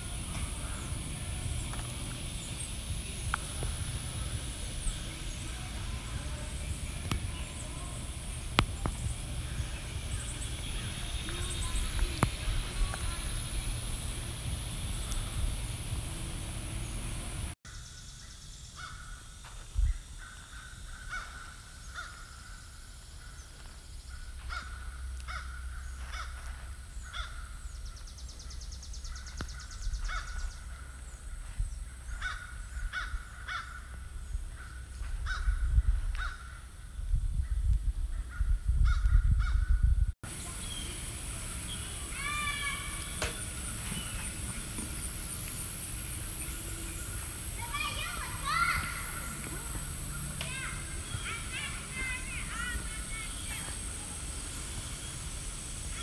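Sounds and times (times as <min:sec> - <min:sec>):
low rumble on microphone: 0:00.0 - 0:17.6, 0:23.2 - 0:56.0.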